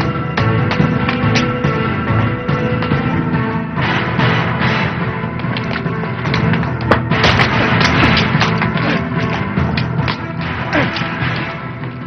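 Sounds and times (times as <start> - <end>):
sharp bangs: 0.0 - 12.0
tense action film music: 0.0 - 12.0.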